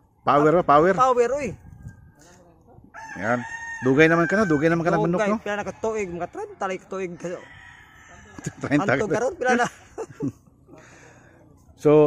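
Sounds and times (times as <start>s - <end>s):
rooster crowing: 2.9s - 9.1s.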